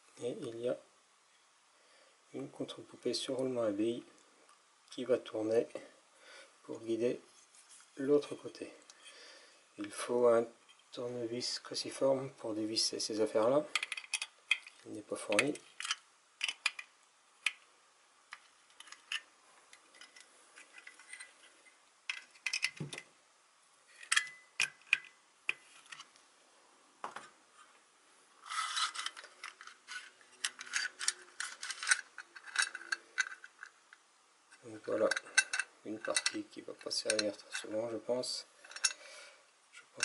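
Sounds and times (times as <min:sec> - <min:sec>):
metal cover rattling and scraping: 0:28.5 - 0:33.6.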